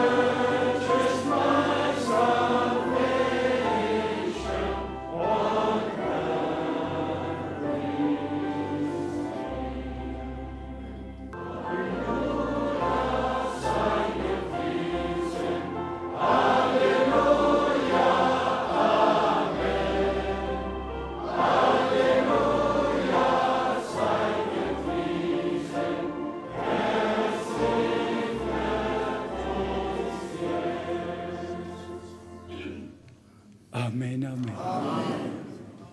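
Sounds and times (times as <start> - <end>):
choir singing a hymn: 0.0 - 33.0, 34.5 - 35.9
sustained low accompaniment: 0.0 - 33.1.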